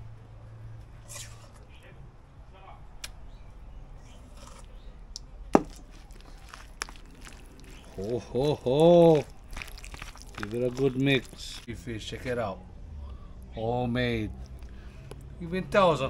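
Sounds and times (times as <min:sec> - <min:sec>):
spoon scraping and stirring: 0:04.0 - 0:04.9, 0:05.6 - 0:11.7.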